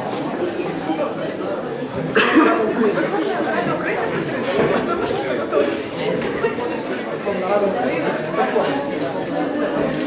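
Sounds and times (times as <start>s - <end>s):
people talking over one another: 0.0s - 10.0s.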